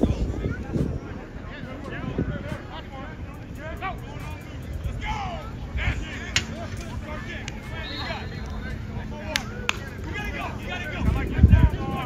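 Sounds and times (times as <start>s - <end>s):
people chattering: 0.0s - 12.0s
steady low rumble: 0.0s - 12.0s.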